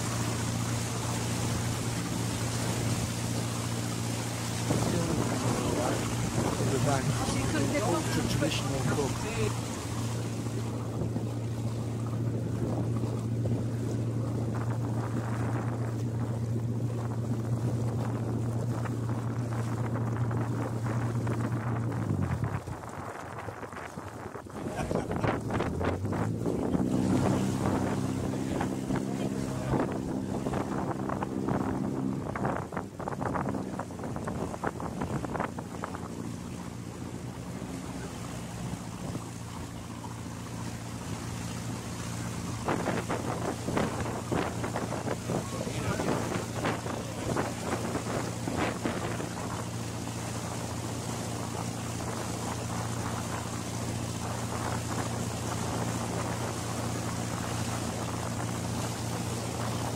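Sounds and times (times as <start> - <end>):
boat engine humming: 0.0 - 59.9
wind buffeting microphone: 0.0 - 59.9.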